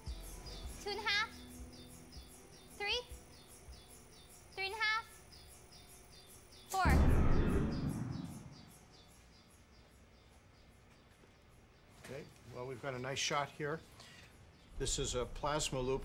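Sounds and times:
capacitor discharge bang: 6.8s - 8.9s.

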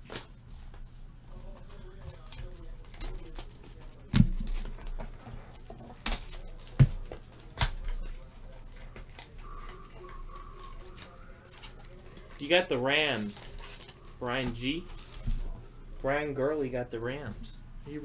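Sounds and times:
cards being handled and sorted: 0.0s - 18.0s.

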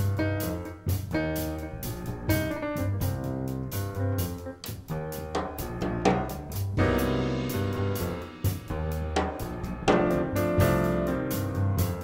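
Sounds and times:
acoustic piano: 0.0s - 12.0s
double bass: 0.0s - 12.0s.

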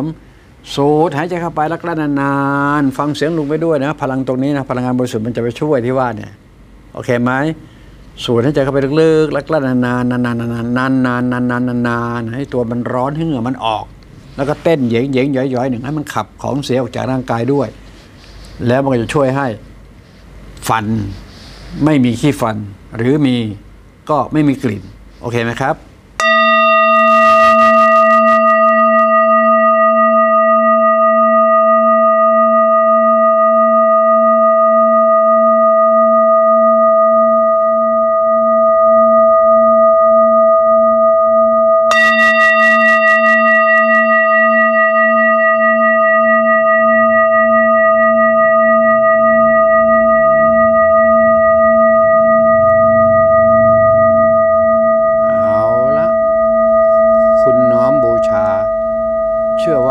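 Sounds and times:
metal singing bowl ringing: 26.2s - 59.9s.

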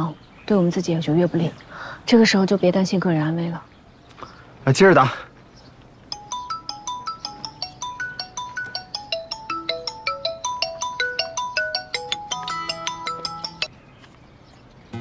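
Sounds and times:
smartphone ringtone melody: 6.1s - 13.7s.

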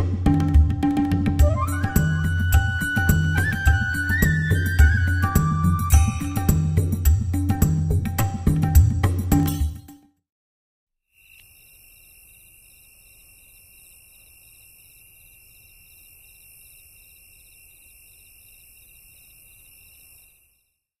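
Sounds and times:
night insects chirping: 11.2s - 20.8s.

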